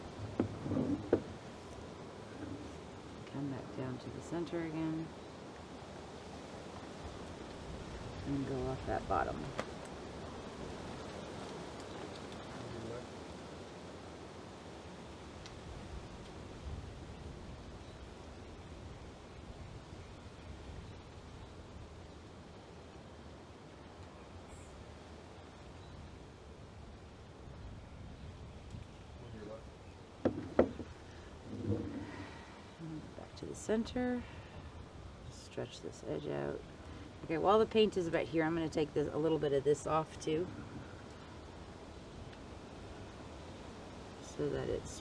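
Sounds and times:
faint outdoor background hiss: 0.0s - 45.0s
sharp knocks: 30.2s - 30.9s.

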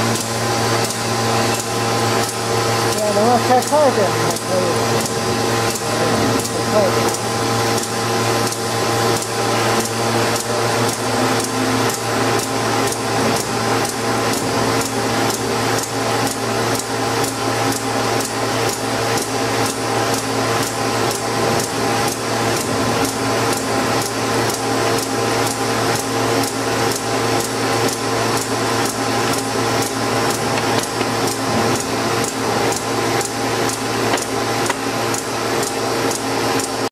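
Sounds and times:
machine clacks: 0.0s - 36.9s
machine humming: 0.0s - 36.9s.

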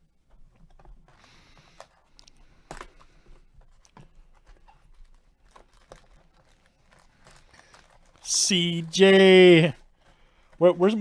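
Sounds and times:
foil packs crinkling: 0.7s - 11.0s
cardboard box rustling and tearing: 3.8s - 8.2s.

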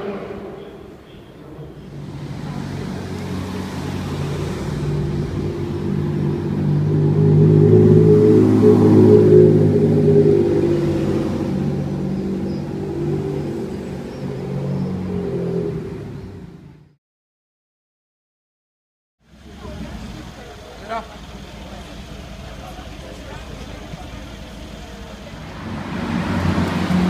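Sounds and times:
sports car engine driving past: 0.0s - 17.0s, 19.3s - 27.0s.

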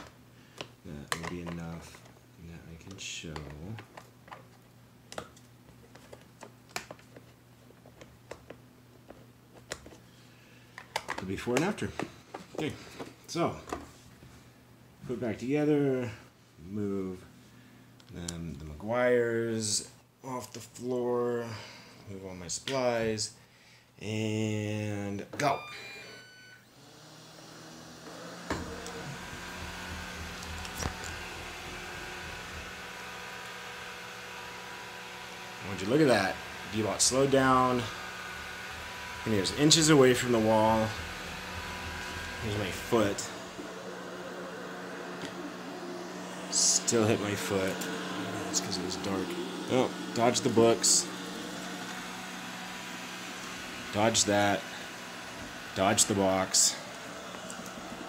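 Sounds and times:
brief electronic tone: 25.5s - 26.7s
robot vacuum motor hum: 25.6s - 58.0s.

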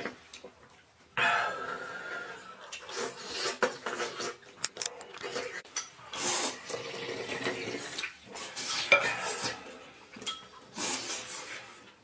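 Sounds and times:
wet slurping and chewing: 1.8s - 12.0s.

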